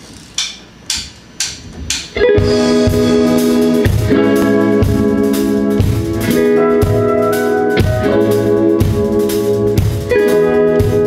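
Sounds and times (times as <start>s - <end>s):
live band loud held chord: 2.2s - 11.0s.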